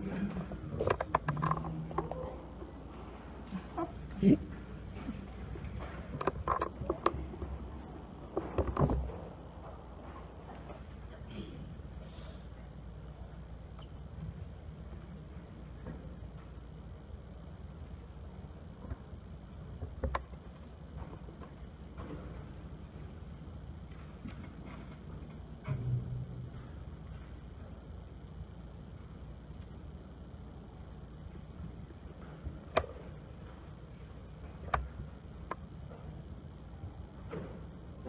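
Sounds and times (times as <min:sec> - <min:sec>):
low steady rumble: 0:00.0 - 0:38.0
faint clicks and knocks: 0:00.2 - 0:11.2, 0:18.3 - 0:23.1, 0:23.8 - 0:27.5, 0:31.3 - 0:36.4.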